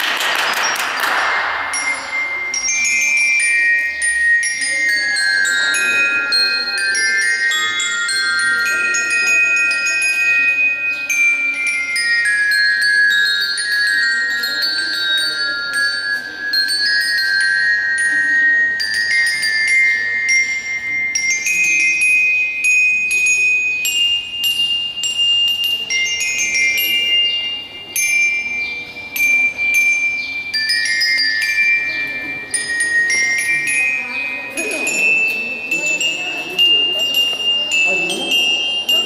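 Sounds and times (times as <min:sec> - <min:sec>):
bell lyre melody: 0:00.0 - 0:39.0.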